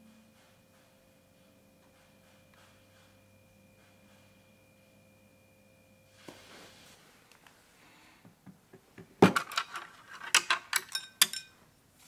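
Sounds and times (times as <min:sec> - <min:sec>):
tableware clinking: 0:09.4 - 0:11.6.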